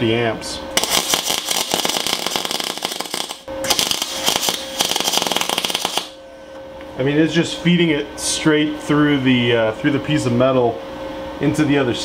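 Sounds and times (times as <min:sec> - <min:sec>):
welding arc crackling: 0:00.8 - 0:06.2.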